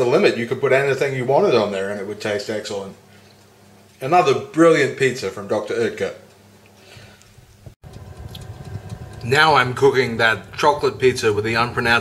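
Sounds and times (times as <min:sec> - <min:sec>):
oven humming: 0:00.0 - 0:12.0.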